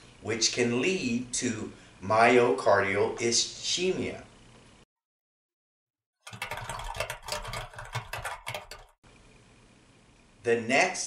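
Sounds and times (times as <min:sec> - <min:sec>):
rapid clatter of clicks: 0:06.2 - 0:09.0.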